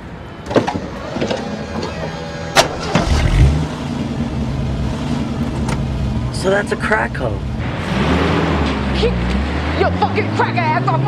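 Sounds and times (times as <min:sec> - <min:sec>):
car engine revving: 0:02.8 - 0:11.0.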